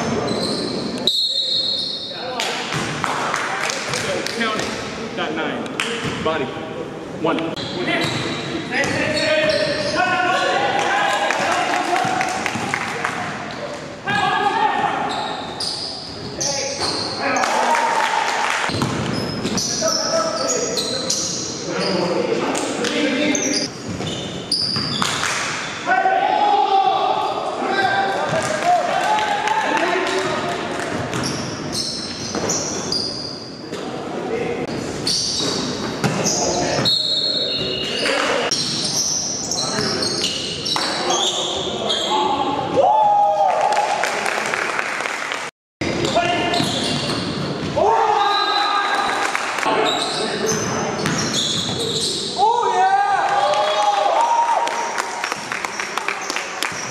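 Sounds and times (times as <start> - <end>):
basketball bouncing on gym floor: 18.7 - 19.6, 30.9 - 31.4.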